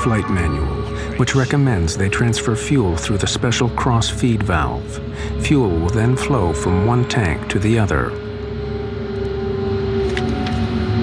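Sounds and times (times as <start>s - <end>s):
rumbling drone: 0.0s - 11.0s.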